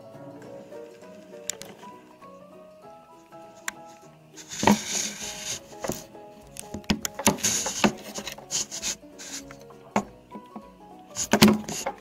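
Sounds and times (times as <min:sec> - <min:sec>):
short scraping rubs: 0:04.4 - 0:06.1, 0:07.2 - 0:09.6
plastic toys knocking together: 0:11.2 - 0:12.0.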